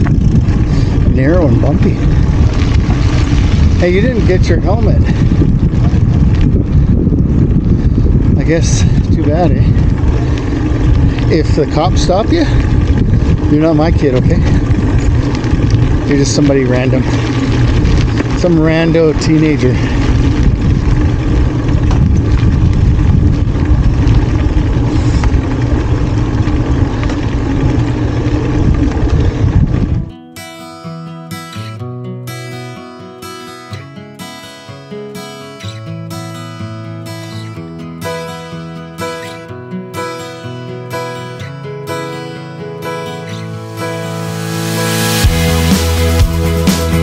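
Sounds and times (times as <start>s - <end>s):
bicycle tyre noise on trail: 0.0s - 30.2s, 35.2s - 47.0s
wind buffeting microphone: 0.0s - 30.2s.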